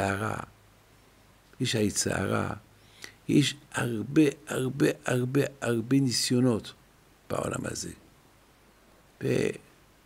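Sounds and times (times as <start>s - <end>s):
man saying a syllable: 9.2s - 9.7s.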